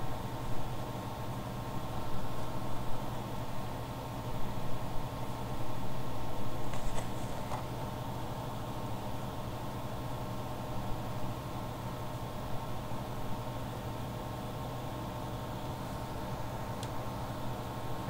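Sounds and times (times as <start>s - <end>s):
faint constant tone: 0.0s - 18.0s
steady low hum: 0.0s - 18.0s.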